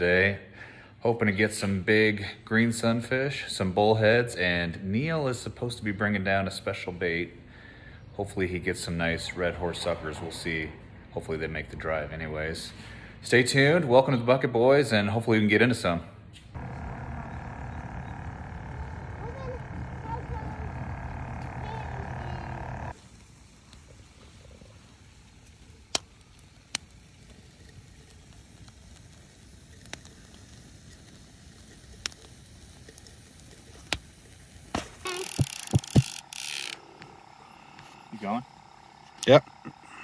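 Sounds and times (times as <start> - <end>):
aerator pump humming: 16.6 - 23.0, 35.0 - 40.0
noisy burst: 16.6 - 23.7, 35.0 - 40.0
sharp clicks: 35.1 - 37.8.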